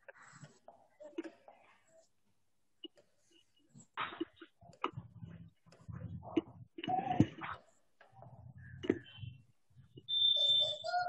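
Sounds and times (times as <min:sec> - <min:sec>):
call-like tone: 0:09.9 - 0:11.0.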